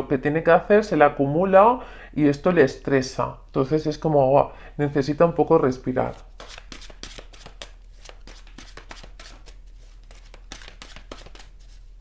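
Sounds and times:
cards being shuffled: 0:06.0 - 0:12.0.

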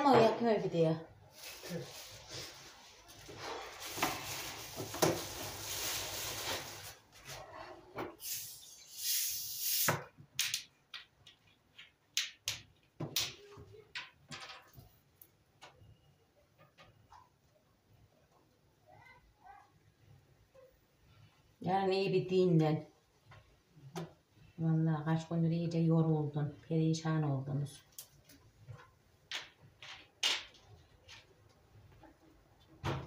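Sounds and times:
sandwich toaster hissing and sizzling: 0:08.2 - 0:09.9.

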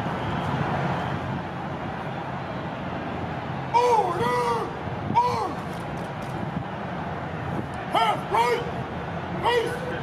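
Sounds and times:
distant city traffic rumble: 0:00.0 - 0:10.0
person shouting command: 0:03.8 - 0:05.6, 0:07.9 - 0:08.7, 0:09.4 - 0:09.9.

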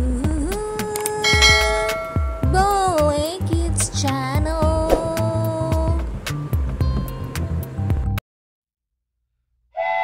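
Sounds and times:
bright bell-like chime: 0:01.2 - 0:02.8
sung jingle over light beat: 0:01.2 - 0:03.2.

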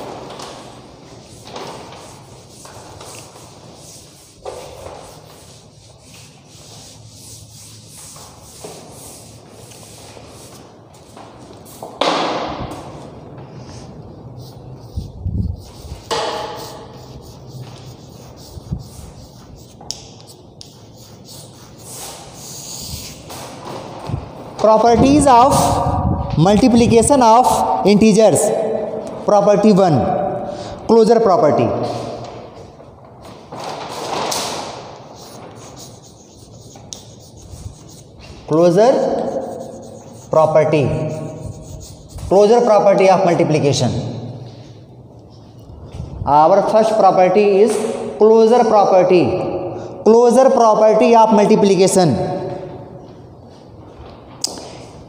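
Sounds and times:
duster scrubbing chalkboard: 0:00.0 - 0:24.2, 0:33.6 - 0:43.3
sharp scrape: 0:13.6 - 0:23.6, 0:33.7 - 0:42.7.

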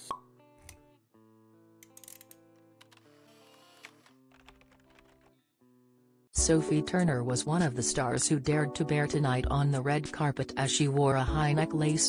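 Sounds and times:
background music: 0:06.4 - 0:12.0.

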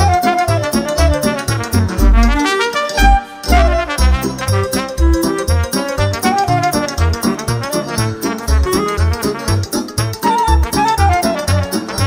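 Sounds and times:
folk dance music: 0:00.0 - 0:12.0
trumpet melody: 0:00.0 - 0:12.0
oom-pah bass and chords: 0:00.7 - 0:10.8.

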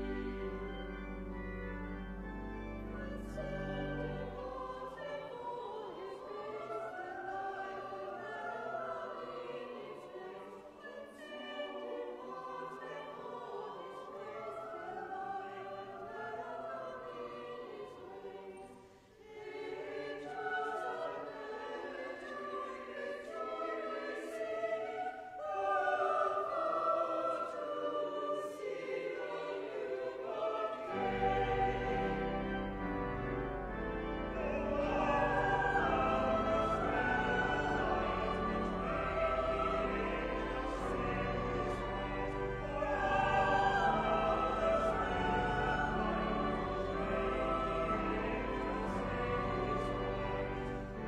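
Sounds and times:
pipe organ bass: 0:00.0 - 0:05.2, 0:30.8 - 0:51.0
choir singing in parts: 0:00.0 - 0:51.0.

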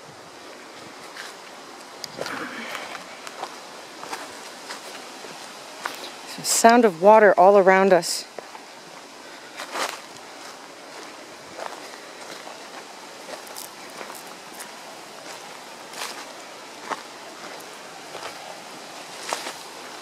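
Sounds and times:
steady background hiss: 0:00.0 - 0:20.0
footsteps on forest trail: 0:00.7 - 0:06.3, 0:08.3 - 0:20.0.

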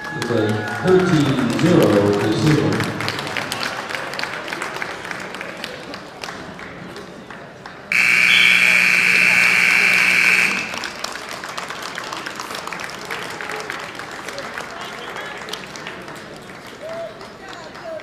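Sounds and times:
crowd noise: 0:00.0 - 0:18.0
people clapping: 0:00.0 - 0:18.0
scoreboard buzzer: 0:07.9 - 0:11.0.

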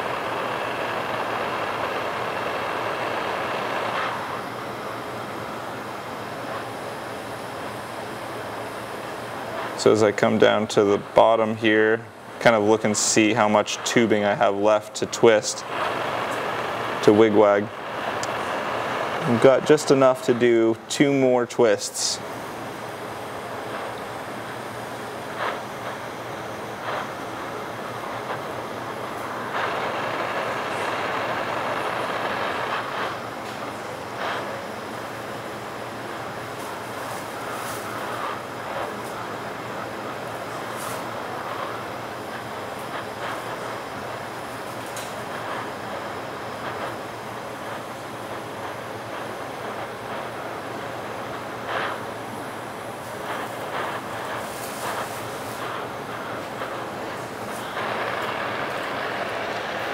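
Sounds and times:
torch flame hissing: 0:00.0 - 0:59.9.

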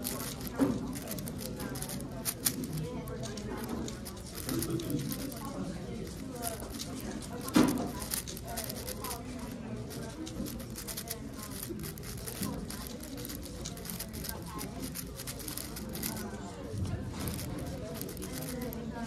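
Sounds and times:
speed cube clicking: 0:00.0 - 0:16.5, 0:17.1 - 0:19.0
crowd chatter: 0:00.0 - 0:19.0.

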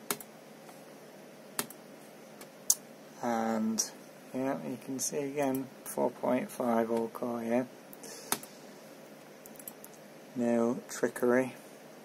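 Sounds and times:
faint fan hiss: 0:00.0 - 0:12.0
computer mouse click: 0:09.4 - 0:10.0.

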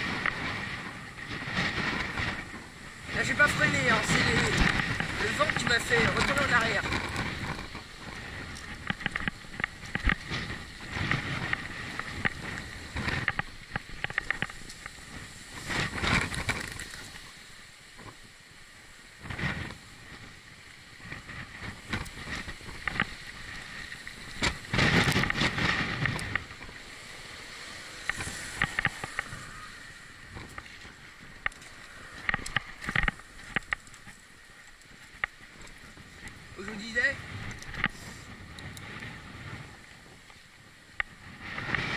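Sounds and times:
bike rattling over rough pavement: 0:00.0 - 0:41.9
wind buffeting microphone: 0:00.0 - 0:41.9.

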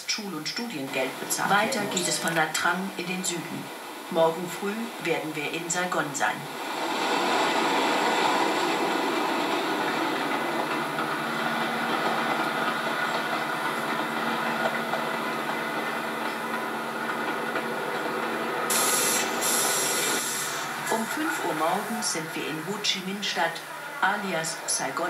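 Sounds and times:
train wheels rumbling on rails: 0:04.9 - 0:25.0
sudden loud hiss: 0:18.7 - 0:21.8.

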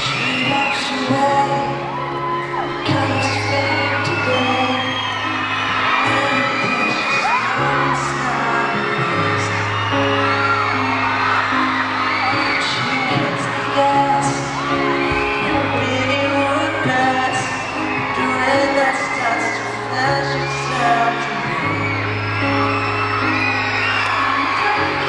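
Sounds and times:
high-pitched fan screams: 0:00.0 - 0:25.0
piano playing slow chords: 0:00.0 - 0:25.0.

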